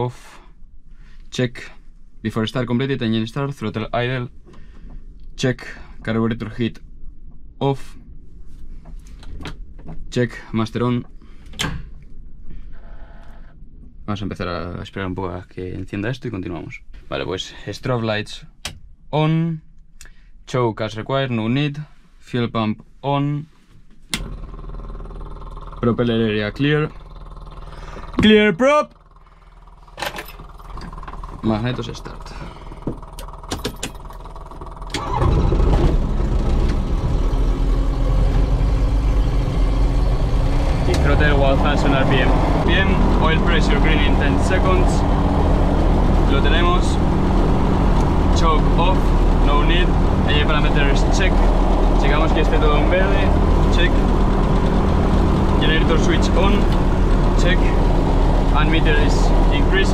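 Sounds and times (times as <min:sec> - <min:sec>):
low steady hum: 0:00.0 - 0:59.9
aircraft piston engine starting: 0:24.2 - 0:59.9.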